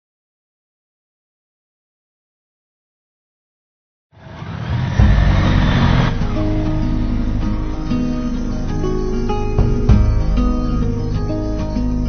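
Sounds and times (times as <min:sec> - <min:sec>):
motorcycle engine running: 0:04.2 - 0:08.6.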